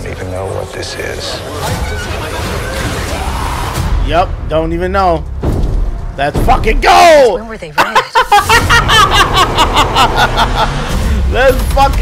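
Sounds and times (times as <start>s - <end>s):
man laughing: 7.8s - 11.3s.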